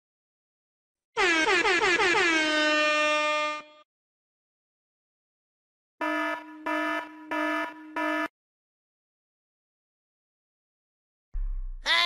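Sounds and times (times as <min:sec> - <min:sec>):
air horn blasts: 0:01.2 - 0:03.8, 0:06.0 - 0:08.3.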